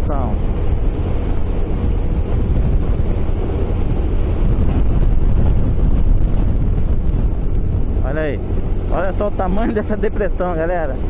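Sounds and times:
wind rushing over microphone: 0.0 - 11.0
low rumble of scooter: 0.3 - 9.2.

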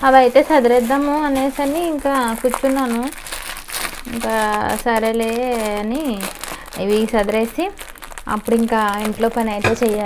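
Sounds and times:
woman's voice: 0.0 - 3.2, 4.1 - 10.0
plastic bag crinkling: 0.0 - 10.0.

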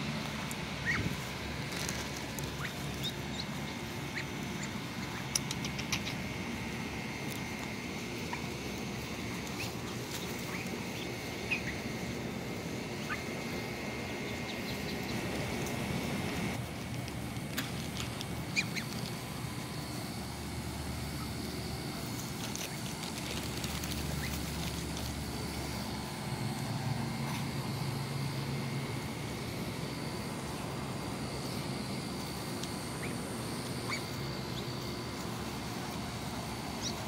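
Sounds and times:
low engine hum: 0.0 - 37.0
ducklings peeping: 0.3 - 16.6, 18.0 - 26.7, 30.3 - 37.0.

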